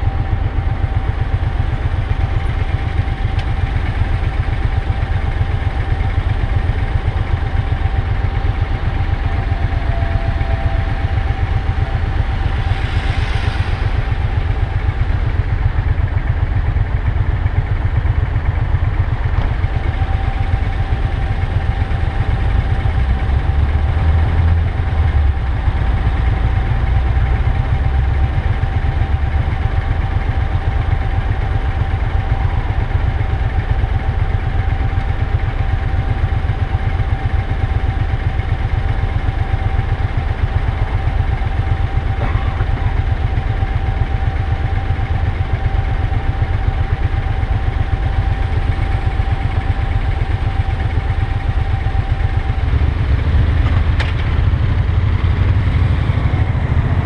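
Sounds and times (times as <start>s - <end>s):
motorcycle engine idling: 0.0s - 57.0s
thin steady whine: 0.0s - 57.0s
brief rushing swell: 10.1s - 15.8s.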